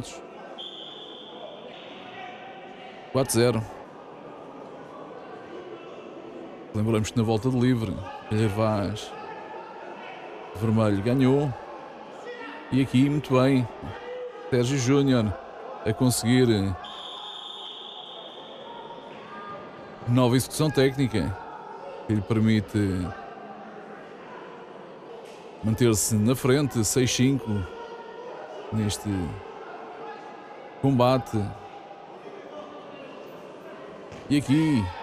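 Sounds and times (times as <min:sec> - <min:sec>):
sports hall background noise: 0:00.0 - 0:35.0
referee's whistle blast: 0:00.6 - 0:01.9, 0:16.8 - 0:18.7.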